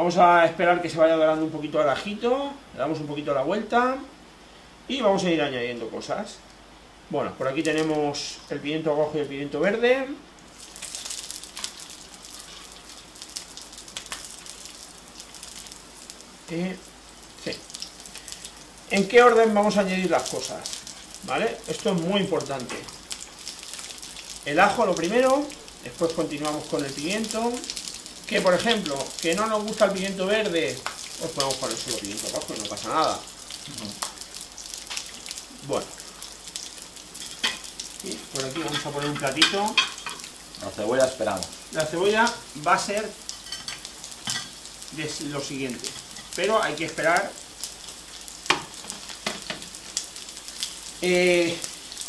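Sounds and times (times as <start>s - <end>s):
sharp oil crackles: 6.4s - 9.6s, 10.3s - 52.0s
garlic sizzling in hot oil: 6.5s - 52.0s.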